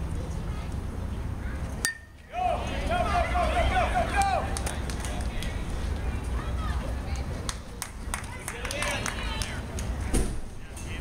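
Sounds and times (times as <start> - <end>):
spectators shouting and cheering: 2.3 - 7.0.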